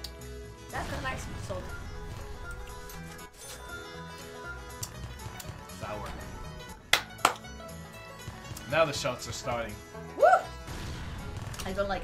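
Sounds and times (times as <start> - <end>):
slot game background music: 0.0 - 12.0.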